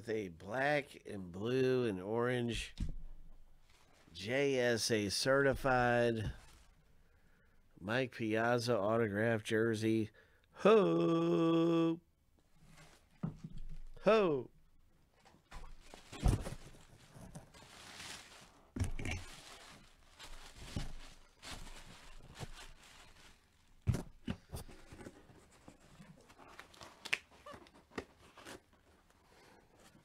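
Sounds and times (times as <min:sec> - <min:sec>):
packaging rustling: 0:15.4 - 0:29.1.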